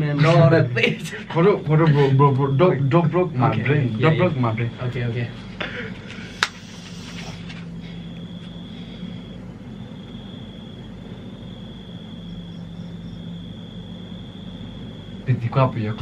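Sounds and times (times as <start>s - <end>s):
faint high-pitched whine: 0.0s - 16.0s
low hum and hiss: 0.0s - 16.0s.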